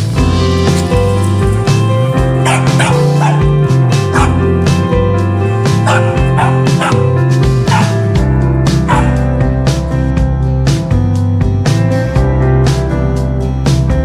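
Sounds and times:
loud background music: 0:00.0 - 0:14.0
broom sweeping: 0:00.4 - 0:03.2
puppy yapping: 0:02.4 - 0:03.5, 0:04.1 - 0:04.4, 0:05.8 - 0:07.1, 0:07.7 - 0:08.0, 0:08.8 - 0:09.3.

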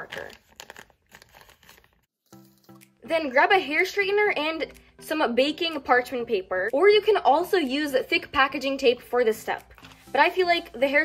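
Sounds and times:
plastic bag crinkling: 0:00.0 - 0:02.8
faint background music: 0:02.3 - 0:11.0.

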